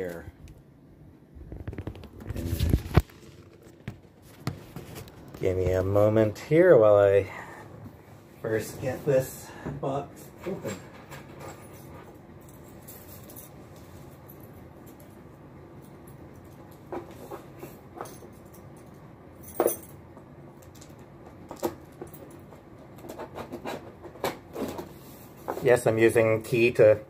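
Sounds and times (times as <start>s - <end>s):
keys jangling: 10.6s - 15.2s, 18.0s - 20.0s.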